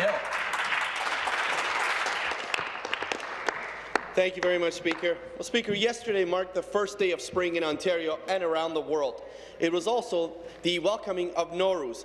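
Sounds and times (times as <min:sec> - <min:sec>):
audience clapping: 0:00.0 - 0:05.2.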